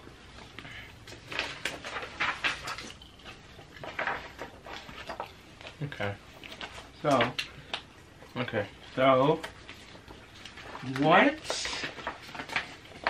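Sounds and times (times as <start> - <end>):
paper rustling: 0.1 - 7.9, 8.7 - 13.0.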